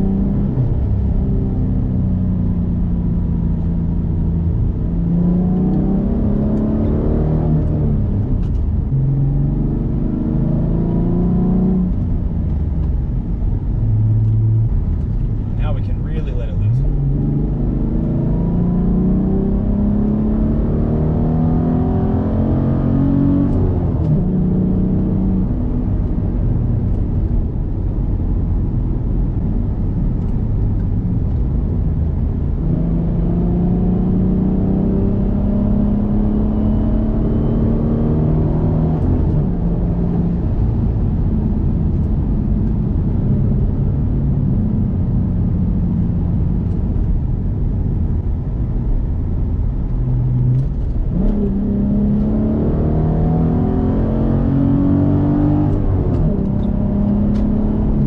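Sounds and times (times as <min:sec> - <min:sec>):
car engine accelerating hard: 0:00.0 - 0:58.0.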